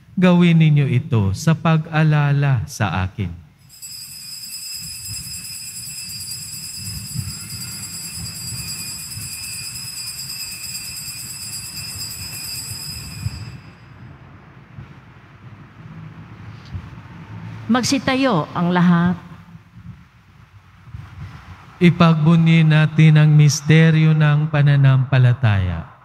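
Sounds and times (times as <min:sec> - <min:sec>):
altar bells ringing: 0:03.6 - 0:14.3.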